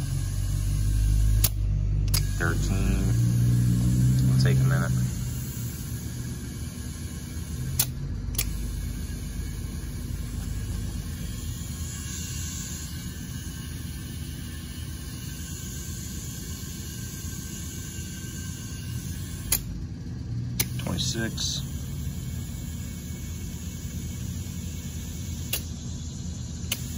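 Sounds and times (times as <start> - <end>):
air compressor rumble: 0.0 - 26.9
sharp clicks: 1.4 - 2.4, 7.8 - 8.6.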